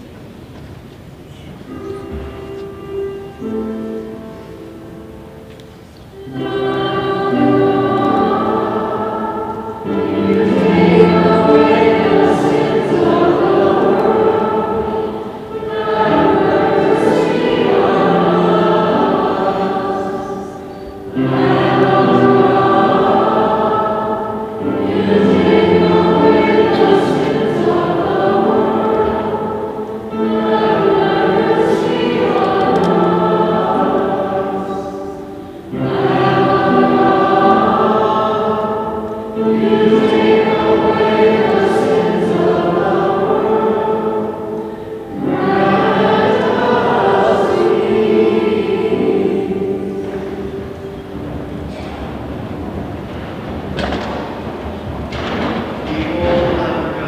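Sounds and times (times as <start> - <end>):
choir singing: 1.3 - 57.0.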